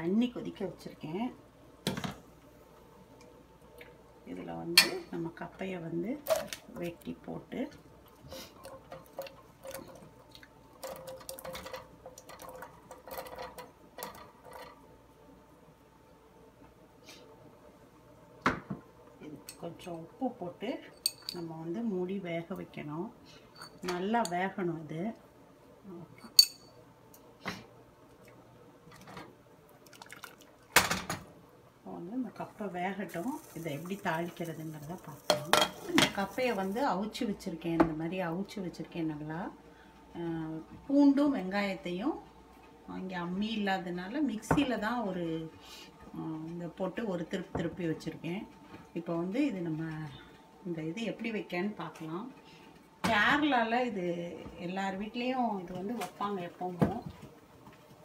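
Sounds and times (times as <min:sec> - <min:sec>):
kitchen metalware clinking: 0:20.9 - 0:21.4, 0:26.2 - 0:26.8.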